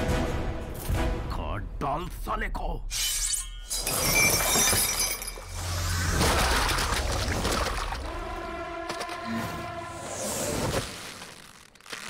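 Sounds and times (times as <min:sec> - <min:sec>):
iron chain crash and jangle: 0:03.6 - 0:05.7.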